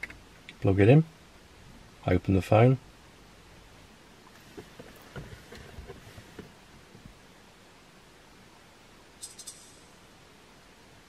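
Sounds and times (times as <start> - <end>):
light knocks and rustles: 4.3 - 7.1.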